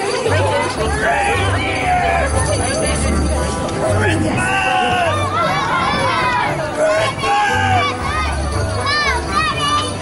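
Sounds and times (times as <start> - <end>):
children shouting and playing: 0.0 - 10.0.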